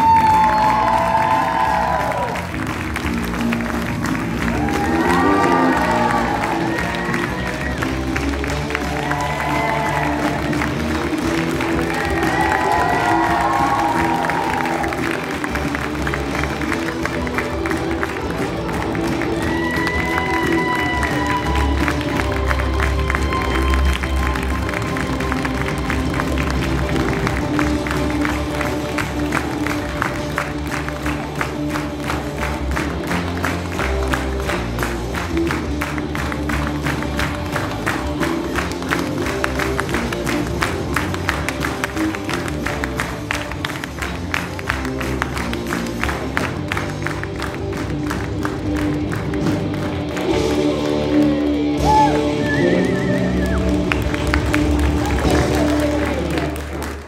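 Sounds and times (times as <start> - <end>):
applause and clapping: 0.0 - 57.0
music playing: 0.0 - 57.0.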